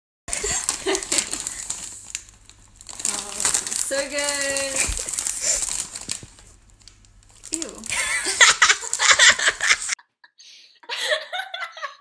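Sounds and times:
plastic chip bag crinkling: 0.3 - 10.0.

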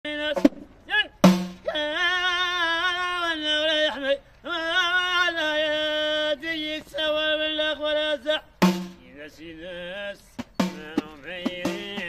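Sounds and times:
man singing: 0.0 - 12.0.

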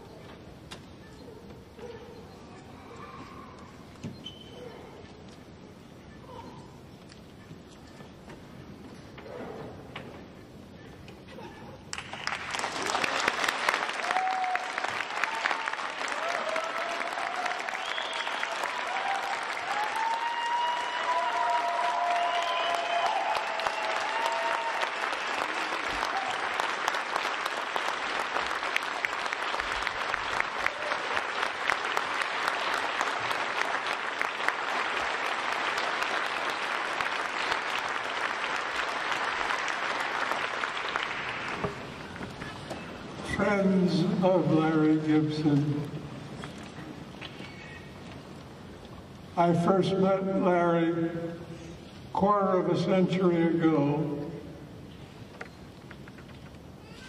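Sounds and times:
audience applauding: 11.9 - 42.6.

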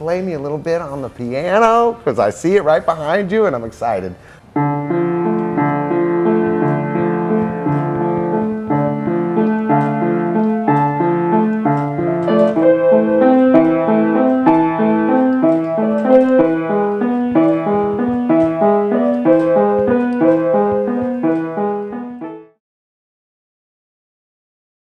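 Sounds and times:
grand piano playing broken chords: 4.5 - 22.6.

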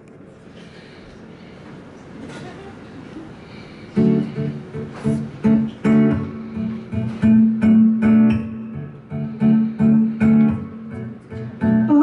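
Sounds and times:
acoustic guitar strumming chords: 4.0 - 12.0.

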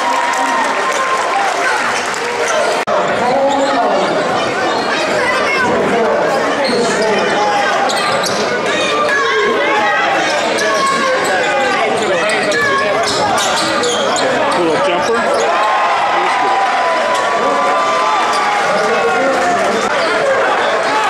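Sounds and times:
crowd voices din: 0.0 - 21.0.

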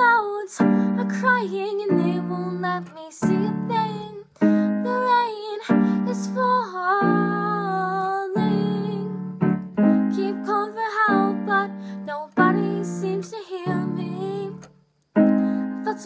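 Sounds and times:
slow piano chords: 0.0 - 16.0
woman singing: 0.0 - 16.0.

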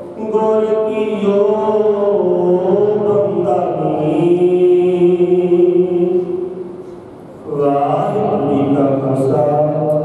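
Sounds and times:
man chanting: 0.0 - 6.5, 7.4 - 10.0.

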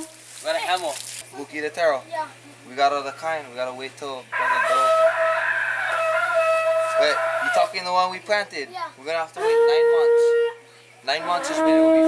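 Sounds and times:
rooster crowing: 4.3 - 7.8.

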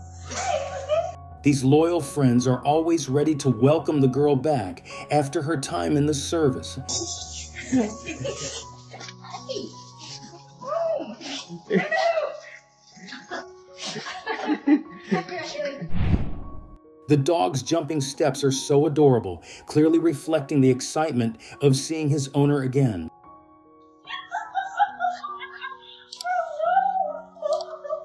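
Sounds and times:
background music: 0.0 - 28.0.

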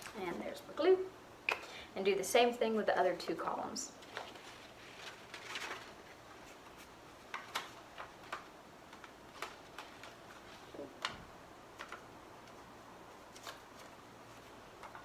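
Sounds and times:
paper rustling: 4.0 - 15.0.

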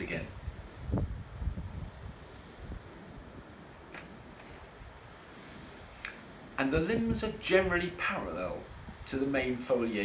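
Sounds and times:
wind on microphone: 0.0 - 9.7.

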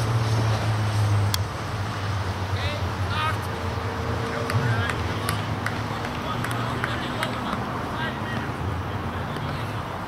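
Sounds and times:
distant players calling: 2.5 - 10.0.

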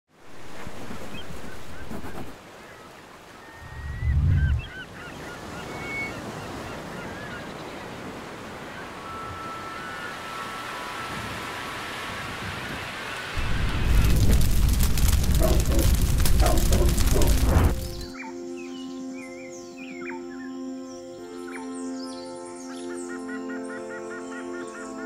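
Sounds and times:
wind: 0.1 - 25.0
birds calling: 1.0 - 11.2, 13.4 - 25.0
heavy low rumble: 3.6 - 4.6, 13.4 - 18.1
surf: 7.9 - 18.1.

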